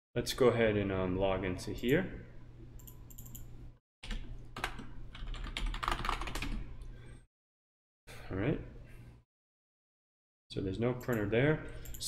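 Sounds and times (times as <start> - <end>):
computer keyboard typing: 4.0 - 6.6.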